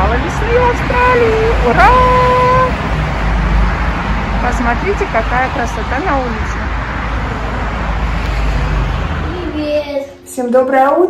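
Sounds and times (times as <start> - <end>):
outdoor rumble and hiss: 0.0 - 10.2.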